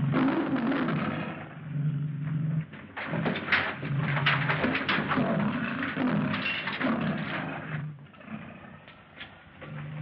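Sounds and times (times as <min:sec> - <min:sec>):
lion growling and snarling: 0:00.0 - 0:10.0.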